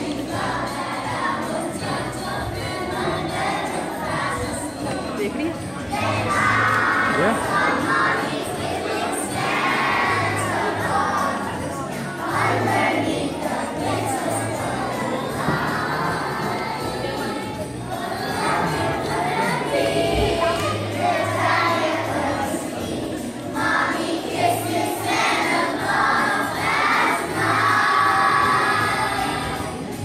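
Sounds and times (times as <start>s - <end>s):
children's choir singing: 0.0s - 30.0s
music: 0.0s - 30.0s.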